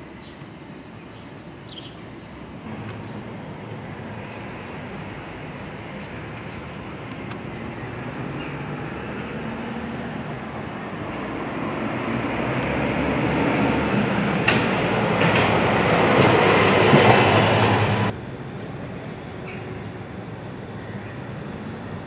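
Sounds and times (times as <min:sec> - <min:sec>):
train rumble and wheel noise: 0:00.0 - 0:22.0.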